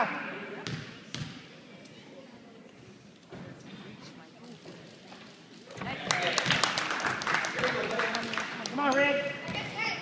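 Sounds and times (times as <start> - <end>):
basketball bouncing on wooden floor: 0.6 - 1.3.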